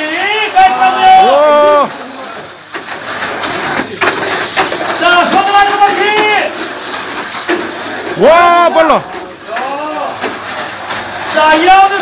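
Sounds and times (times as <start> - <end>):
raised voices calling out: 0.0 - 2.4
murmur and clatter of busy room: 0.0 - 12.0.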